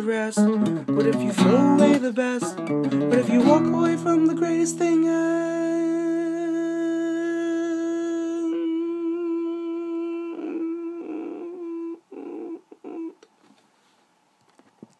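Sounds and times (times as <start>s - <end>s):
acoustic guitar chord ringing: 0.4s - 6.0s
man humming: 0.9s - 13.2s.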